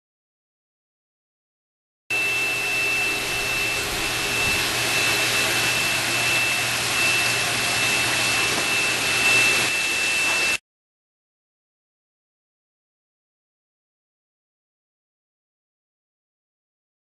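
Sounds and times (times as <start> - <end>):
high-pitched whine: 2.1 - 10.6
low hum: 2.1 - 10.6
machine rushing hiss: 2.6 - 10.6.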